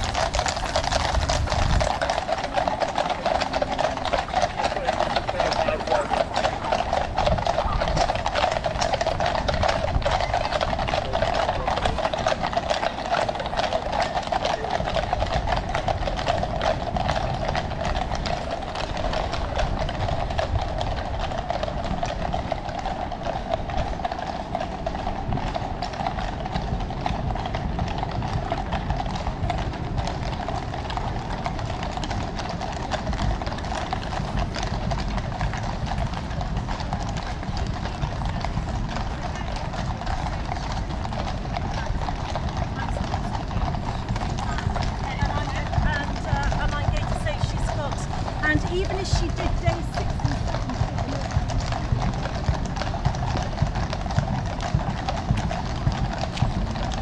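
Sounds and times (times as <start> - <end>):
horse hooves clip-clopping on road: 0.0 - 57.0.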